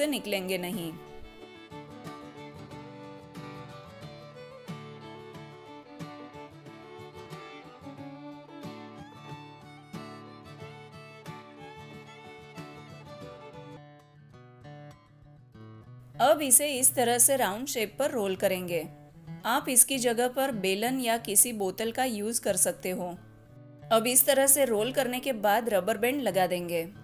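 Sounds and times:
plucked string instrument tune: 0:00.0 - 0:17.5.

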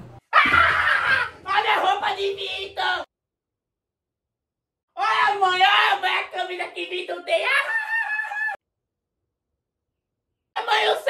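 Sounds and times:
man yelling: 0:00.4 - 0:03.0, 0:05.0 - 0:08.6, 0:10.6 - 0:11.0.

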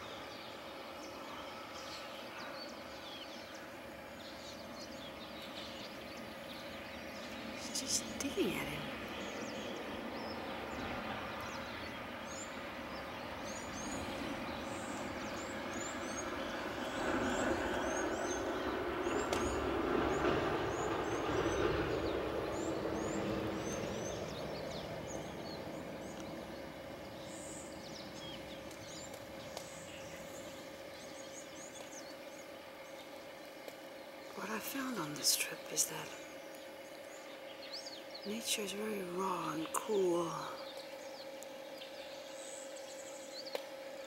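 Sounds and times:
steady background noise: 0:00.0 - 0:44.0.

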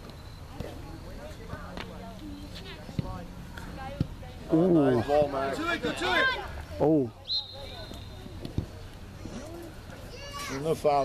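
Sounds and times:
distant shouting voices: 0:00.1 - 0:11.0.

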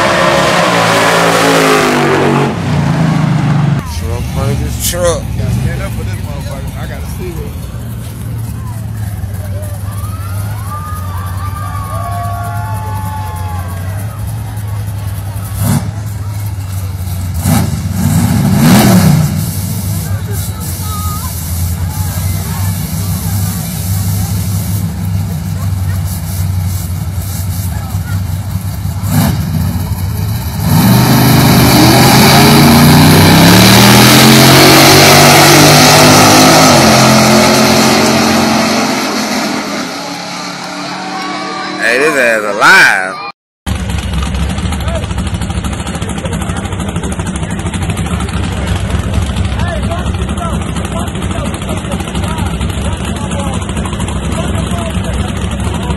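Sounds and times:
engine revving: 0:00.0 - 0:09.9, 0:13.7 - 0:42.8
car engine idling: 0:02.5 - 0:34.2, 0:43.7 - 0:55.9
car accelerating through gears: 0:30.6 - 0:42.5.

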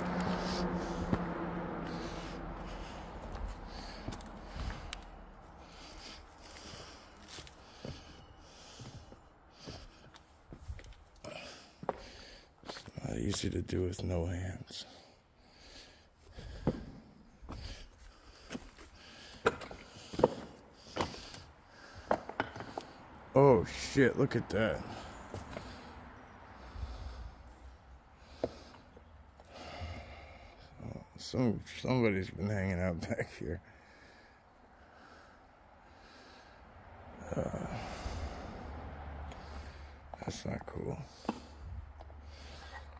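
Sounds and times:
breathing against microphone: 0:00.0 - 0:13.0, 0:14.7 - 0:23.3, 0:24.6 - 0:30.8, 0:33.6 - 0:40.2, 0:41.0 - 0:42.9
footsteps on loose slate rubble: 0:05.8 - 0:08.2, 0:08.8 - 0:13.5, 0:16.4 - 0:22.9
man snorting: 0:11.2 - 0:12.9, 0:37.2 - 0:39.9
man saying uh: 0:13.0 - 0:14.9, 0:23.4 - 0:25.0.

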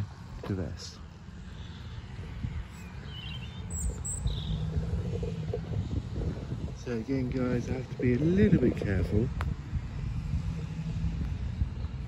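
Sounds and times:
wind rumble on microphone: 0:00.0 - 0:12.0
bird chirps: 0:02.7 - 0:05.4.

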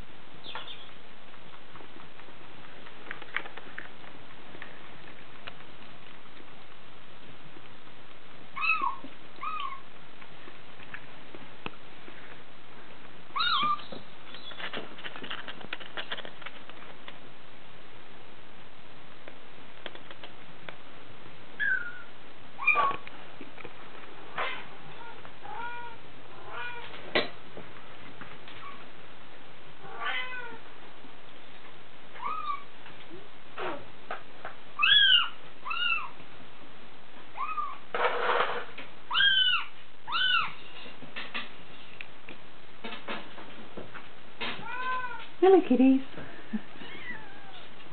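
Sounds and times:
kitten meowing: 0:08.6 - 0:09.8, 0:13.4 - 0:14.6, 0:32.2 - 0:32.7, 0:37.4 - 0:37.8, 0:39.1 - 0:40.6, 0:46.8 - 0:47.6.

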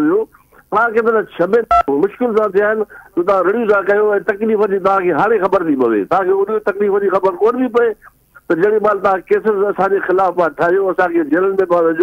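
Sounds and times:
man talking: 0:00.0 - 0:12.0
telephone keypad beep: 0:01.7 - 0:01.9.

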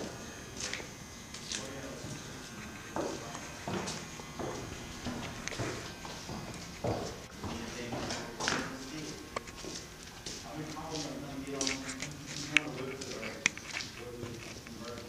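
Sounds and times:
footsteps on wooden stairs: 0:02.9 - 0:13.2.

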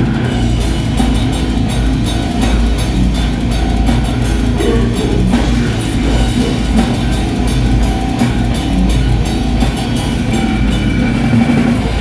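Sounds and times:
death metal band playing: 0:00.0 - 0:12.0.

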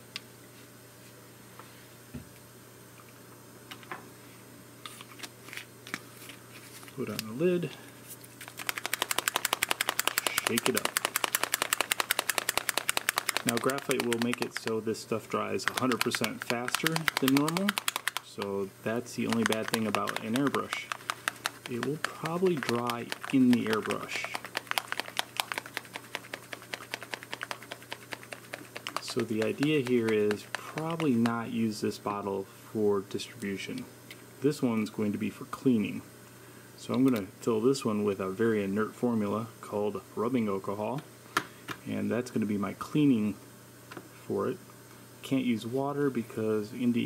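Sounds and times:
marble rattling in plastic bottle: 0:08.4 - 0:14.8, 0:15.4 - 0:18.4, 0:19.1 - 0:31.3.

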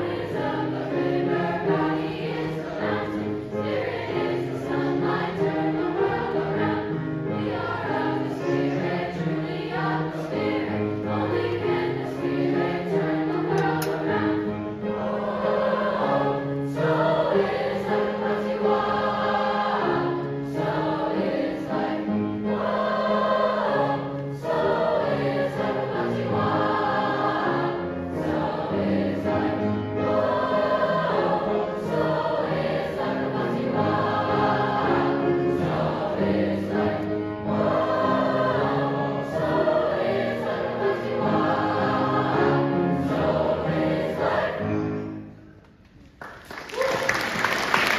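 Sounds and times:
youth choir singing: 0:00.0 - 0:45.4
piano: 0:00.0 - 0:47.9.

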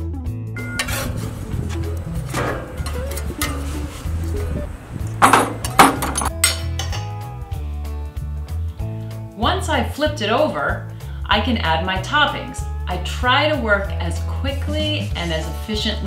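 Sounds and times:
background music with bass line: 0:00.0 - 0:16.0
metal tongs clinking on grill: 0:00.6 - 0:07.2.

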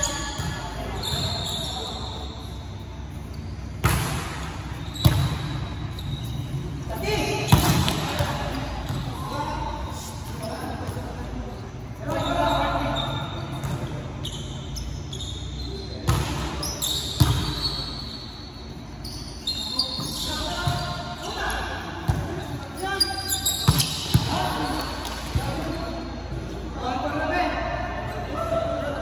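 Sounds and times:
volleyball smacks in gym: 0:03.8 - 0:05.6, 0:07.5 - 0:09.0.

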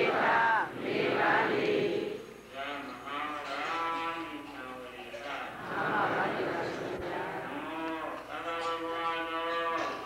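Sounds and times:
person chanting a long tone: 0:05.6 - 0:10.0.

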